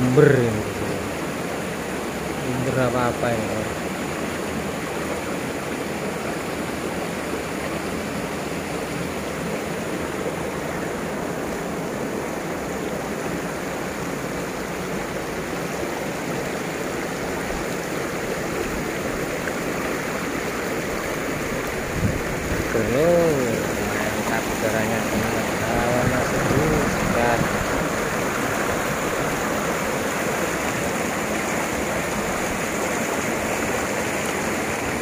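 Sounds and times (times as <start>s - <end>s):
water running over rocks: 0.0s - 35.0s.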